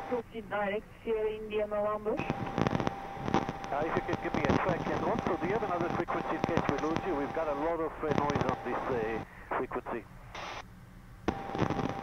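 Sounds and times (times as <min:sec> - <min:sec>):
radio static crackling: 0:00.0 - 0:10.6, 0:11.3 - 0:12.0
high whine in radio transmission: 0:00.0 - 0:12.0
jet cabin drone: 0:00.0 - 0:12.0.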